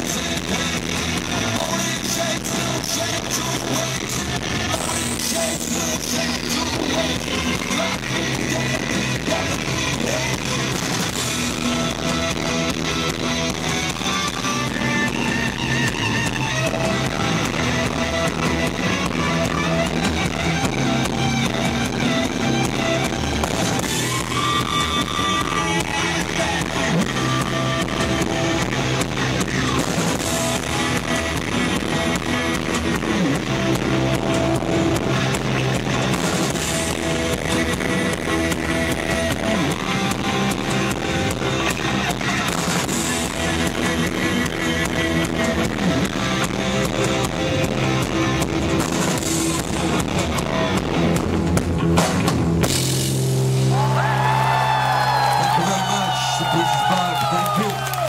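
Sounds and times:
live rock band playing: 0.0s - 58.0s.

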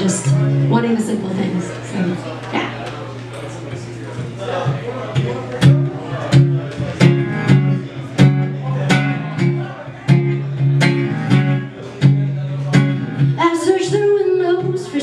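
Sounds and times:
acoustic guitar strumming: 0.0s - 1.4s, 4.6s - 15.0s.

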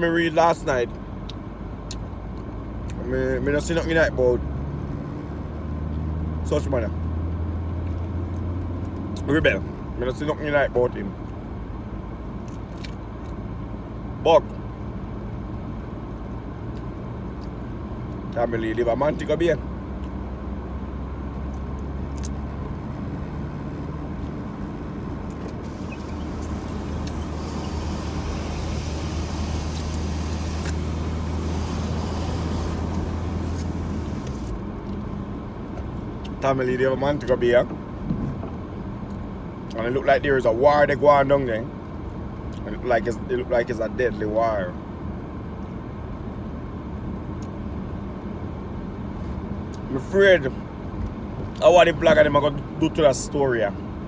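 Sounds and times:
car engine hum from inside: 0.0s - 54.0s
road noise hiss: 0.0s - 54.0s.

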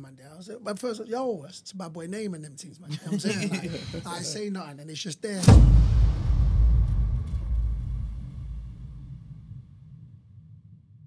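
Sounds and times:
deep bass boom: 5.4s - 11.0s.

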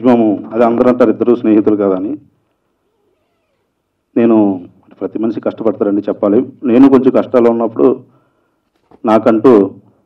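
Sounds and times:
man's amplified speech: 0.0s - 2.3s, 4.2s - 8.1s, 9.0s - 9.8s.

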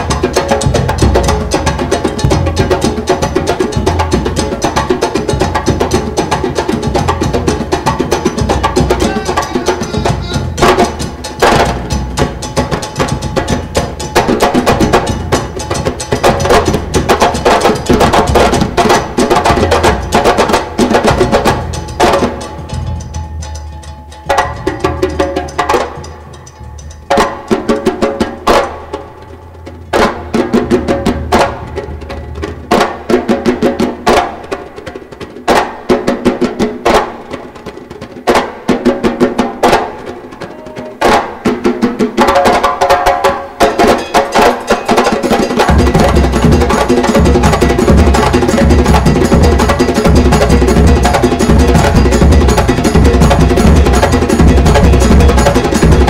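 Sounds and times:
deep drums: 0.0s - 34.7s, 45.4s - 56.0s
conga hand strikes: 0.0s - 56.0s
percussion ensemble playing: 0.0s - 56.0s.

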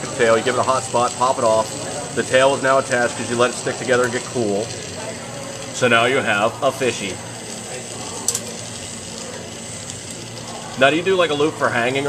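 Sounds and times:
torch flame hissing: 0.0s - 12.0s.

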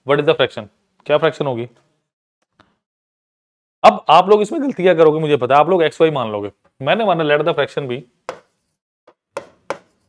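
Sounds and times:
pen tapping on writing board: 8.3s - 10.0s.

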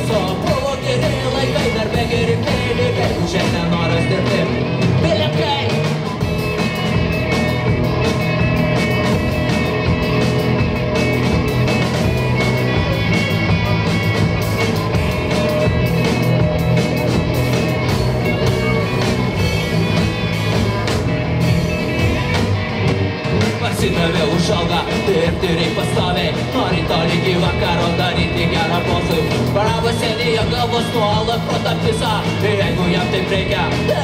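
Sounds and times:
bass guitar: 0.0s - 34.0s
drum kit: 0.0s - 34.0s
electric guitars: 0.0s - 34.0s.

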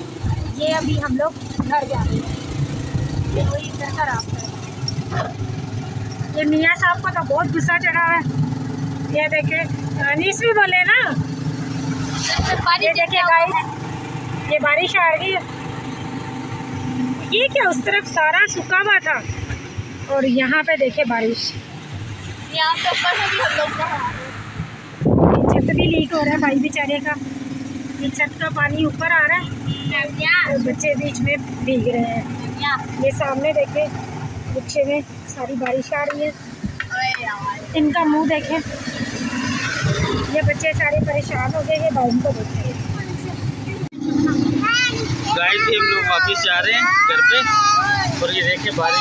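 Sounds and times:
low engine hum: 0.0s - 49.0s
children's voices: 12.2s - 13.8s, 22.4s - 24.4s, 34.6s - 38.7s, 40.1s - 49.0s.

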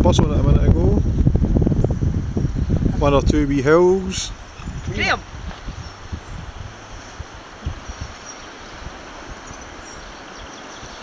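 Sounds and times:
wind buffeting microphone: 0.0s - 11.0s
steady rushing hiss: 0.9s - 11.0s.

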